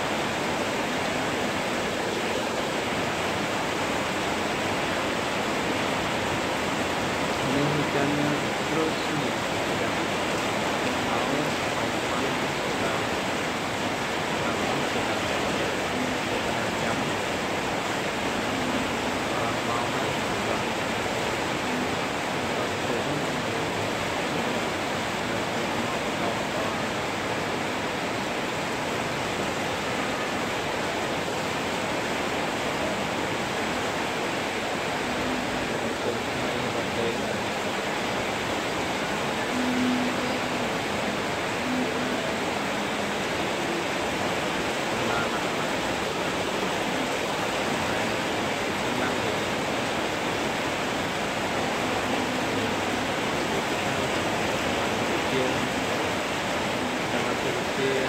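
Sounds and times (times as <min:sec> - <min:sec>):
heavy rain falling: 0:00.0 - 0:58.0.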